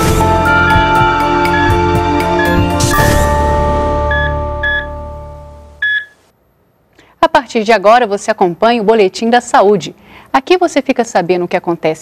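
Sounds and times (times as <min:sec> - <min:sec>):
theme music closing chord: 0:00.0 - 0:05.8
short electronic beeps: 0:00.7 - 0:03.4, 0:04.1 - 0:05.0, 0:05.8 - 0:06.2.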